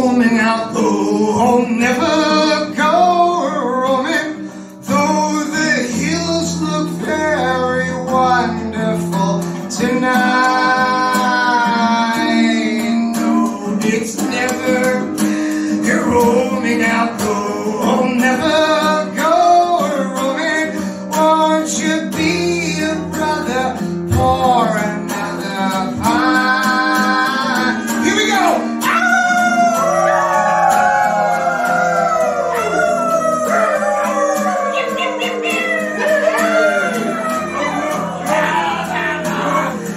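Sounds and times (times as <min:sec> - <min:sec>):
man singing: 0:00.0 - 0:39.9
strummed acoustic guitar: 0:00.0 - 0:39.9.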